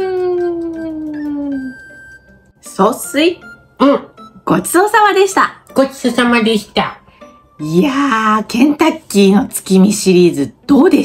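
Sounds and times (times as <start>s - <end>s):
person humming: 0.0s - 1.8s.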